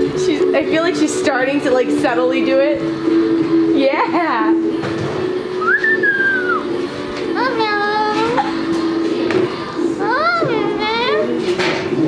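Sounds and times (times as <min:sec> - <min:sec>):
cockatoo whistling and calling: 0:05.6 - 0:06.7.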